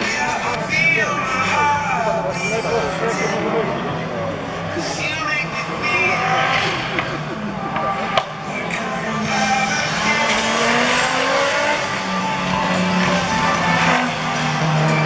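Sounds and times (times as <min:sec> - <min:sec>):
rally car engine accelerating: 0:00.0 - 0:15.0.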